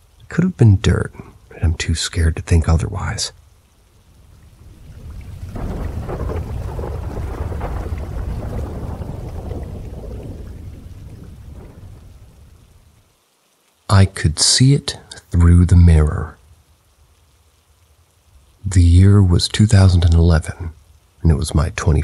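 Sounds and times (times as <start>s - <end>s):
rain: 0.0s - 22.0s
rolling thunder: 4.2s - 13.0s.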